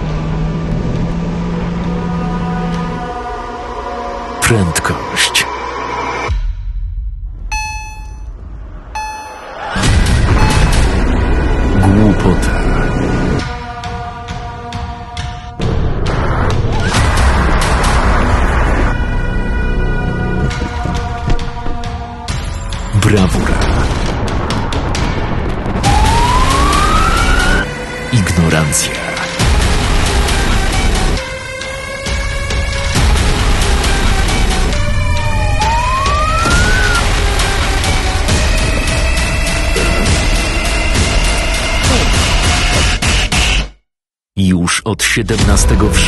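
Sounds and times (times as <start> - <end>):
electronic beeps: 7.5 - 8.3, 9.0 - 11.0
police siren wail: 25.8 - 27.8, 34.8 - 37.3.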